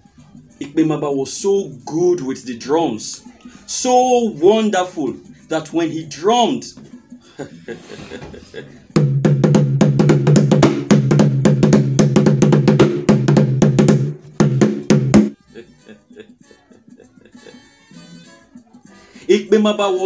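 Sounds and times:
fast drum strokes: 9.0 - 15.3.

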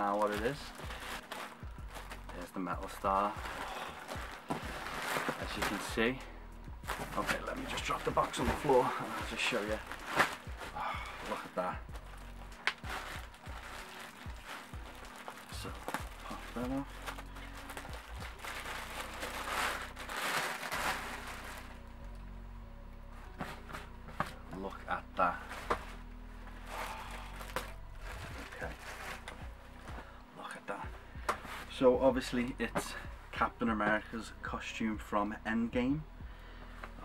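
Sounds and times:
plastic bag rustling: 0.0 - 22.0, 23.3 - 30.6
background music: 0.0 - 37.0.

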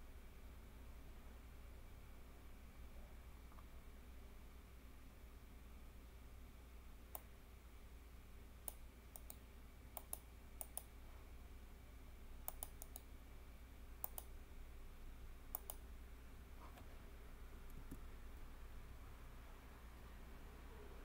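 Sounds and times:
faint low hum: 0.0 - 21.0
computer mouse clicking: 8.6 - 9.4, 10.0 - 10.9, 12.5 - 13.1, 14.0 - 14.3, 15.5 - 15.8.

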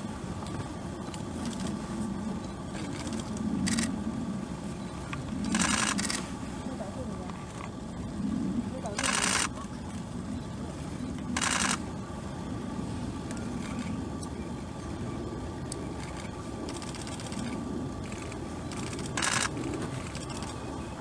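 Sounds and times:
low background rumble: 0.0 - 21.0.

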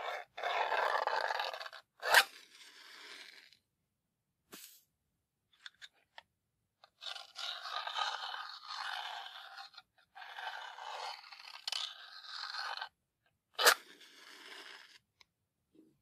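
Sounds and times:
match scratching on matchbox: 0.0 - 3.6, 6.9 - 12.9, 13.6 - 15.0
match struck sharply: 4.5 - 4.8.

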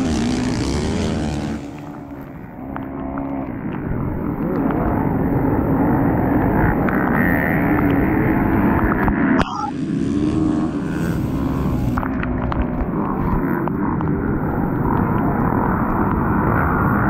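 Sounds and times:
dirt bike engine revving: 0.0 - 17.0
other dirt bikes: 0.0 - 17.0.

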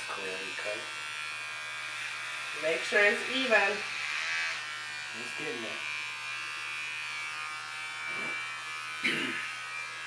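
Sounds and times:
electric hair clippers buzzing: 0.0 - 10.0.

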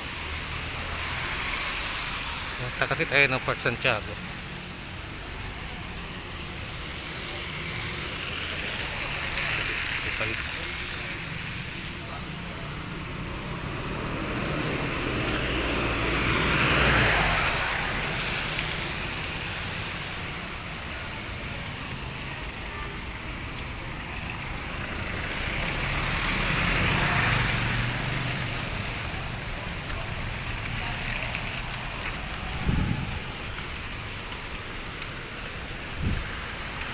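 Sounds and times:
tyre hiss on wet road: 0.0 - 36.9.

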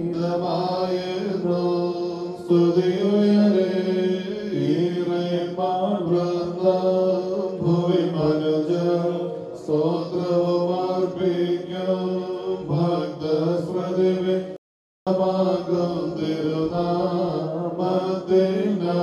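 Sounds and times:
man chanting hymn over loudspeakers: 0.0 - 19.0.

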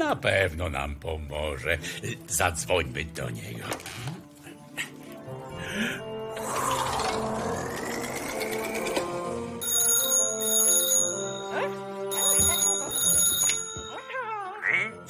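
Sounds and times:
background music: 0.0 - 15.0
telephone ringing: 8.7 - 14.3.

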